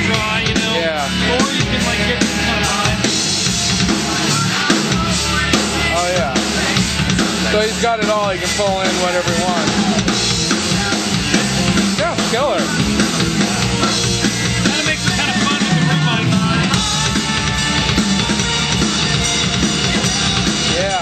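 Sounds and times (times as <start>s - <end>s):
rock drum kit playing: 0.0s - 21.0s.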